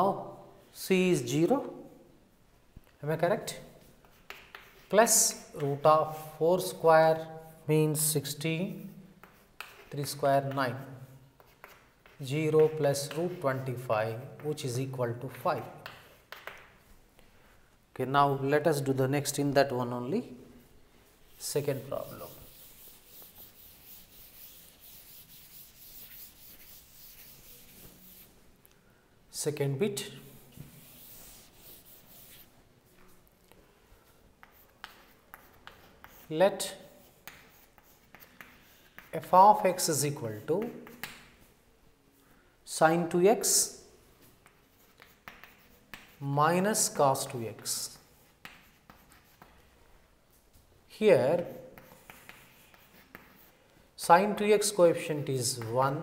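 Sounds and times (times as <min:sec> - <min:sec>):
person speaking: 0:00.0 - 0:02.1, 0:03.0 - 0:03.9, 0:04.7 - 0:16.4, 0:17.9 - 0:28.4, 0:29.3 - 0:32.5, 0:34.4 - 0:41.0, 0:42.6 - 0:43.9, 0:45.9 - 0:49.4, 0:50.9 - 0:56.0
chalk scratching on chalkboard: 0:03.4 - 0:07.7, 0:08.8 - 0:16.9, 0:20.6 - 0:28.4, 0:30.1 - 0:33.3, 0:34.0 - 0:41.6, 0:43.4 - 0:50.5, 0:51.1 - 0:53.7
duster wiping a chalkboard: 0:20.6 - 0:28.4, 0:30.0 - 0:33.2, 0:44.1 - 0:53.7.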